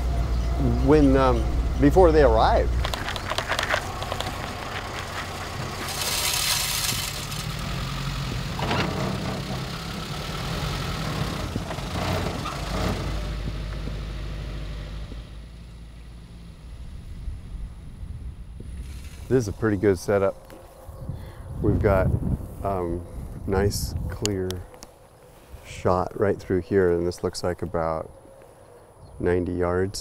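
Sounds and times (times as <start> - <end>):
car engine rumbling: 0.0 - 28.2.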